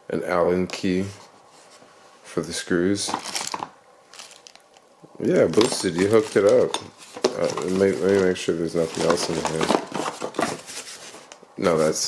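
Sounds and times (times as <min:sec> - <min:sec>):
plastic bags crinkling: 0:03.0 - 0:11.4.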